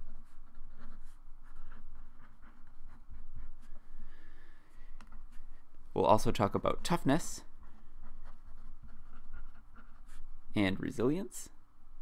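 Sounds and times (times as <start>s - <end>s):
marker scratching on paper: 0.0s - 4.0s, 7.5s - 10.4s.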